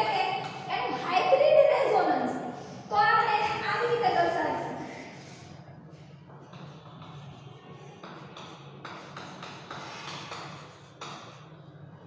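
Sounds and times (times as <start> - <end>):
chalk scratching on chalkboard: 0.0 - 1.4, 3.5 - 11.8.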